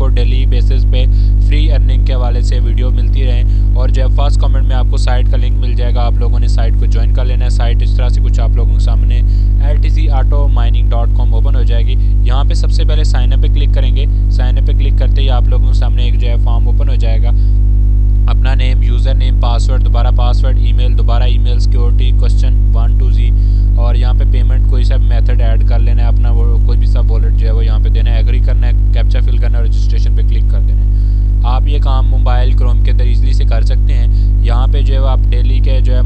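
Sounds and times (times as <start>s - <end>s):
man talking: 0.0s - 17.6s, 18.3s - 36.0s
electrical mains hum: 0.0s - 36.0s.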